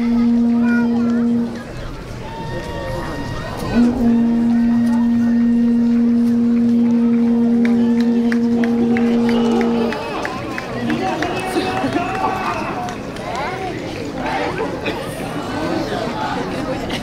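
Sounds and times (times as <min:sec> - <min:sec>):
long horn-like note: 0:00.0 - 0:01.8, 0:02.8 - 0:10.2
crowd voices: 0:00.0 - 0:17.0.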